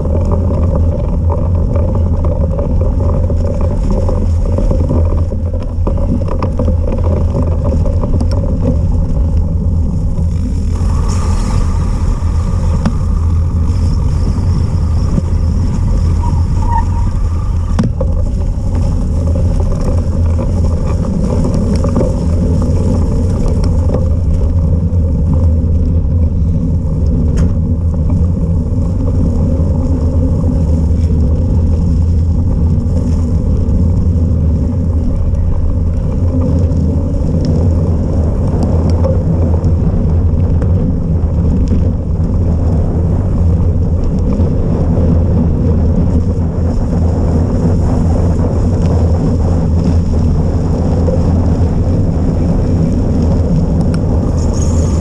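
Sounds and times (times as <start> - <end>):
bike ticks and rattles: 0.0 - 55.0
wind buffeting microphone: 0.0 - 55.0.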